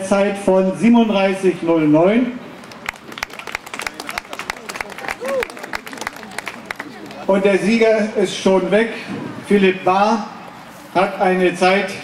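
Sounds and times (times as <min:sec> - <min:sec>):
people clapping: 0:02.6 - 0:07.3.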